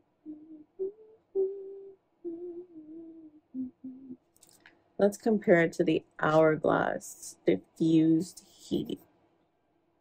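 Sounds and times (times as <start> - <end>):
woman humming a tune: 0.0 - 4.2.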